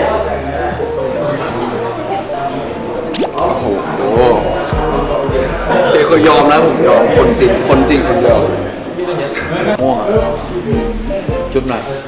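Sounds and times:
light background music: 0:00.0 - 0:09.0, 0:09.7 - 0:12.0
water-drop bloop effect: 0:03.1 - 0:04.9.

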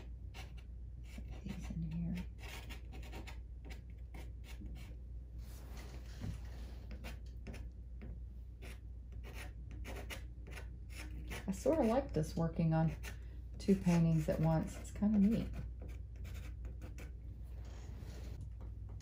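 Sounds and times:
pastel scratching on paper: 0:12.9 - 0:15.6.

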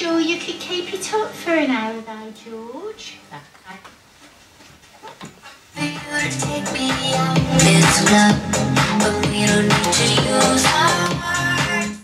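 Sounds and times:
electronic dance music: 0:06.6 - 0:10.1
low broken loudspeaker sound: 0:07.0 - 0:09.2.

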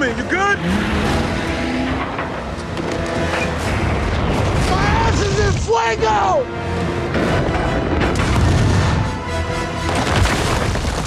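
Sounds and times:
dramatic score music: 0:00.0 - 0:11.0
armoured vehicle crashing: 0:00.7 - 0:05.7, 0:07.1 - 0:11.0
heavy explosion booms: 0:07.2 - 0:09.2.

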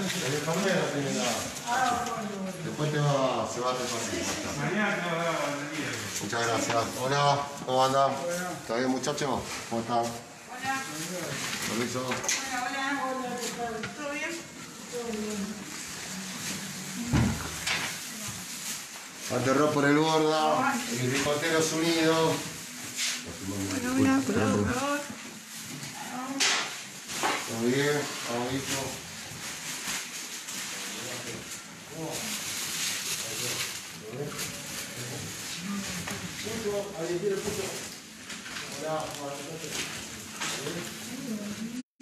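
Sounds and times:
plastic bags rustling: 0:00.0 - 0:41.8.

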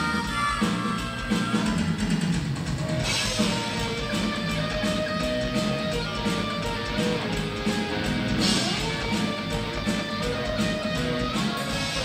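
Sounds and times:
harmonica: 0:00.0 - 0:02.4
bass guitar: 0:00.0 - 0:12.0
drum kit: 0:00.0 - 0:12.0
electric guitar: 0:00.0 - 0:12.0.

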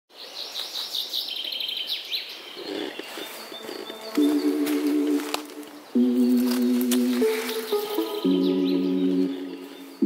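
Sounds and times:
birds chirping and trilling: 0:00.1 - 0:10.0.

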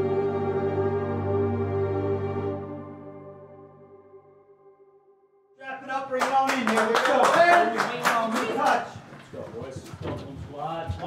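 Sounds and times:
sharp hand claps: 0:06.2 - 0:08.9.

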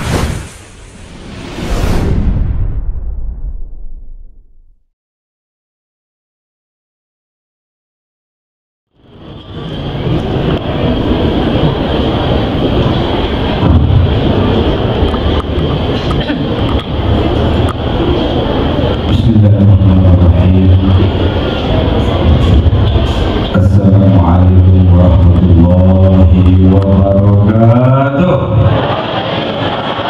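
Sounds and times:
steady high whine: 0:08.9 - 0:30.0
loud noisy background: 0:09.0 - 0:30.0
man chanting through loudspeaker: 0:19.1 - 0:21.2, 0:23.5 - 0:28.6.

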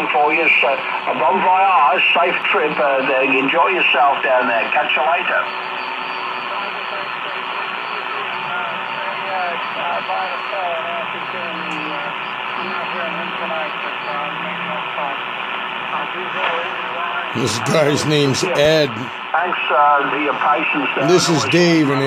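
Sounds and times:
radio static hiss: 0:00.0 - 0:22.0
faint voice over radio: 0:06.4 - 0:22.0.

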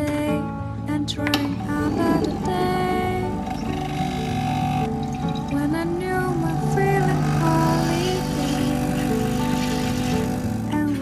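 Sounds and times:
background music: 0:00.0 - 0:11.0
espresso machine pump hum: 0:01.6 - 0:11.0.

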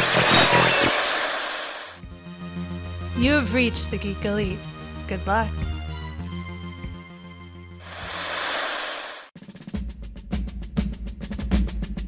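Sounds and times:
loud static rushing noise: 0:00.0 - 0:02.0, 0:07.8 - 0:09.3.

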